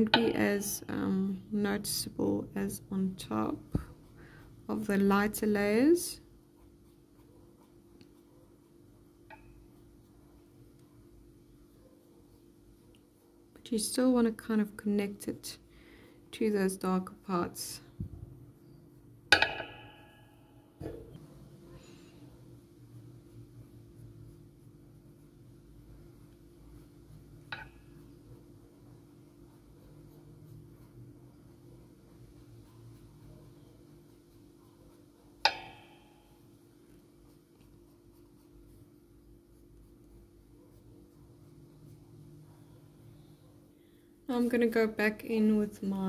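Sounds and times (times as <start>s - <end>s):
pencil scratching on paper: 0.0s - 19.2s, 22.0s - 43.7s.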